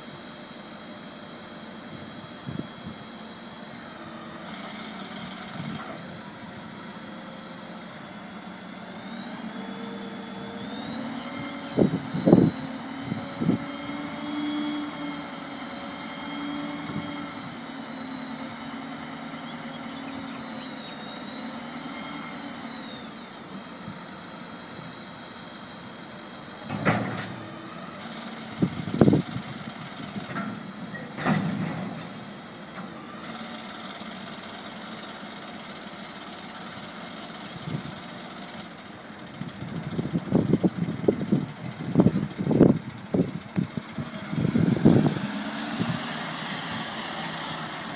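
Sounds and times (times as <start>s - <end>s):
hydraulic pump whine: 0.0s - 47.9s
truck engine running: 0.0s - 47.9s.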